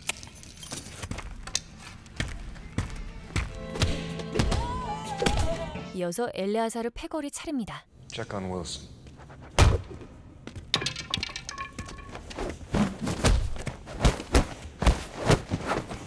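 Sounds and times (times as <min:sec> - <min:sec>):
punches and body blows: 0:12.7 - 0:16.0.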